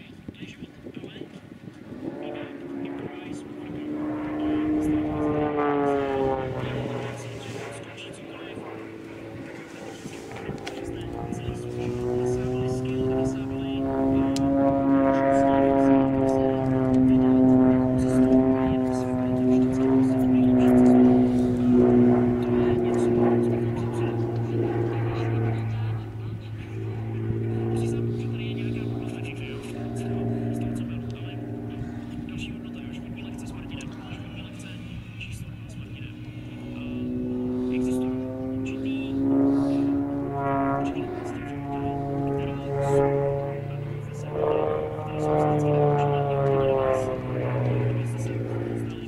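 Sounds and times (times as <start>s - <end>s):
airplane piston engine droning: 0.0s - 49.0s.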